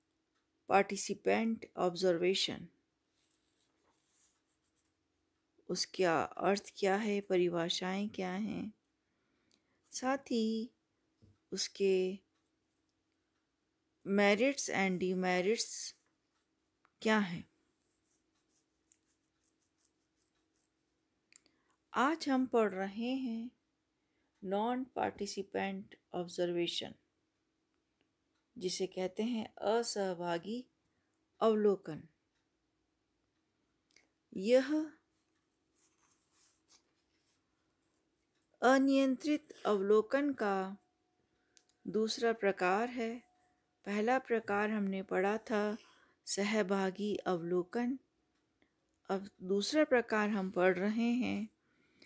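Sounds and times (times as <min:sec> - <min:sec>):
narrator speaking: 0:00.7 - 0:02.7, 0:05.6 - 0:08.8, 0:09.9 - 0:10.8, 0:11.5 - 0:12.2, 0:14.1 - 0:16.0, 0:17.0 - 0:17.5, 0:22.0 - 0:23.6, 0:24.4 - 0:27.0, 0:28.6 - 0:30.7, 0:34.3 - 0:35.0, 0:38.6 - 0:40.8, 0:41.9 - 0:43.3, 0:43.9 - 0:48.0, 0:49.1 - 0:51.5.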